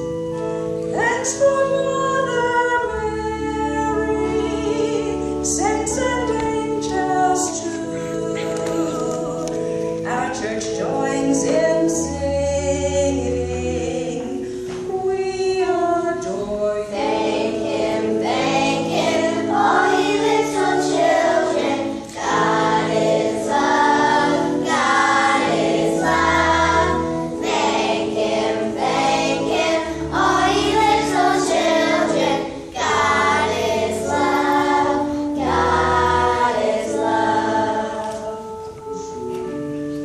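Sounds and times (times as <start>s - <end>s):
instrumental accompaniment: 0.0s - 40.0s
children's choir singing: 1.0s - 39.1s.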